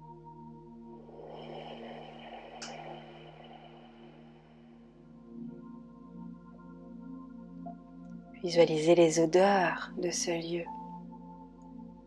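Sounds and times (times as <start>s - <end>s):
ambient drone music: 0.0s - 12.0s
rushing noise: 0.9s - 5.2s.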